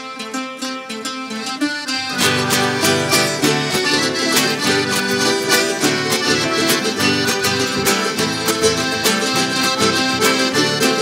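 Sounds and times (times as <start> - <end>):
folk band playing plucked strings: 0.0 - 11.0.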